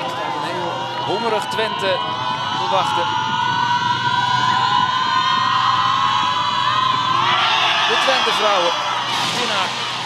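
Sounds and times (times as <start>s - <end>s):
crowd cheering: 0.0s - 10.0s
long high-pitched crowd shout: 0.0s - 10.0s.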